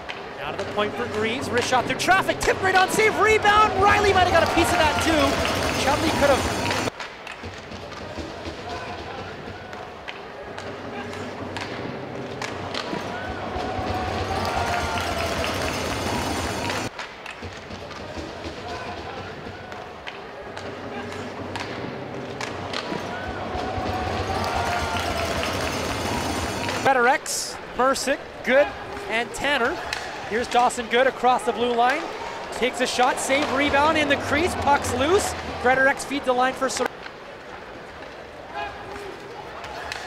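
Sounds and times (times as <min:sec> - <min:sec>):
crowd noise: 0:00.0 - 0:40.0
distant voices: 0:31.5 - 0:37.5.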